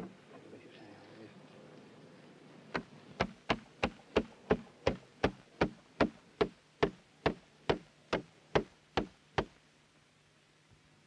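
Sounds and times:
sharp short knocks: 2.7s - 9.5s.

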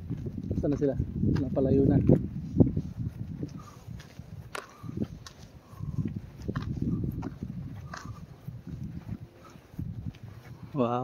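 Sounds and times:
footsteps on a path: 0.0s - 11.0s
wind rumble on microphone: 0.0s - 11.0s.

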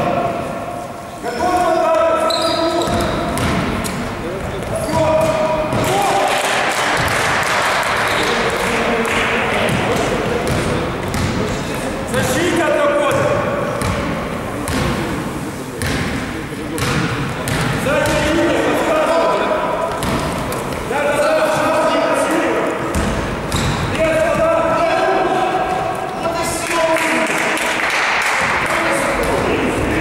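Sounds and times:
basketball dribbling on court: 2.8s - 3.8s, 9.6s - 11.7s, 13.1s - 14.1s, 16.7s - 18.3s, 19.9s - 20.9s, 22.9s - 23.9s
players shouting in echoing hall: 4.7s - 15.4s, 17.0s - 30.0s.

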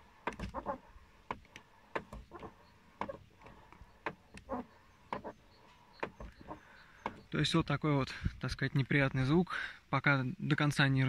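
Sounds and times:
car door creaking and squeaking: 0.0s - 7.7s.

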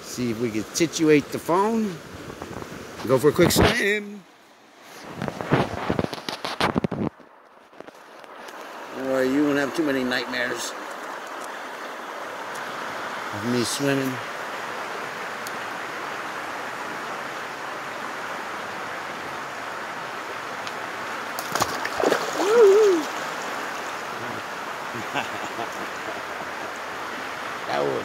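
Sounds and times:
fast-flowing river: 0.0s - 6.5s, 7.6s - 28.0s
wavering vocal cry: 22.3s - 23.2s.

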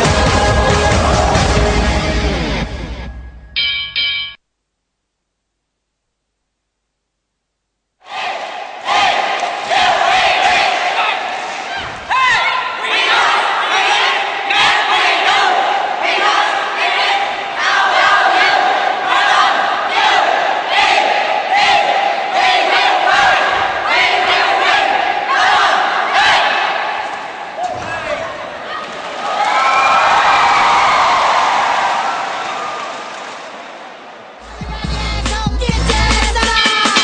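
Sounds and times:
cheerleaders shouting a chant: 8.0s - 32.6s
crowd noise: 8.0s - 37.0s.

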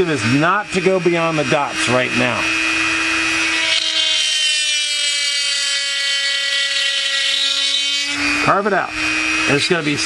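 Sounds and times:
rotary tool carving plastic: 0.0s - 10.0s.

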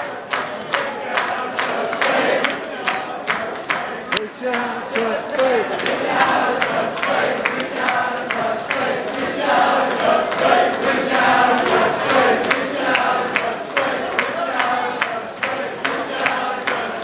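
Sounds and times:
crowd clapping in time: 0.0s - 17.0s
crowd singing and chanting: 0.0s - 17.0s.

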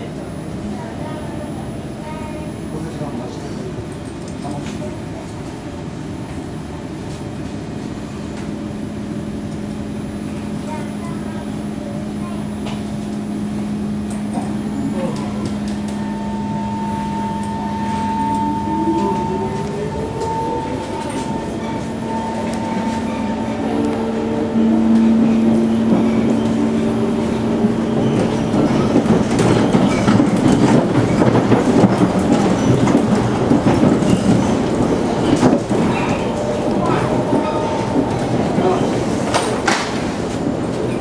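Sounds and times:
rumbling clicking wheels on rails: 0.0s - 41.0s
traction motors whining: 14.0s - 39.6s.

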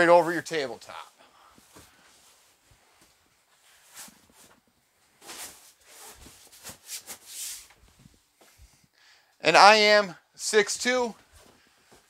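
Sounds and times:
cushions rustling and brushing: 1.5s - 8.6s.

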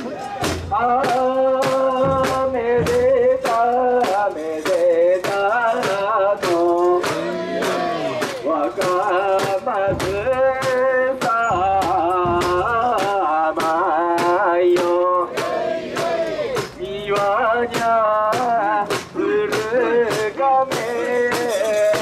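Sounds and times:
carriers chanting: 0.0s - 22.0s
man singing through a megaphone: 0.0s - 22.0s
sharp rhythmic clacks: 0.0s - 22.0s.

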